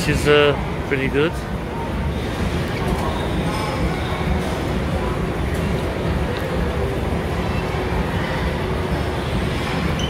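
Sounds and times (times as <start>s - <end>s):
shopping mall low rumble: 0.0s - 10.0s.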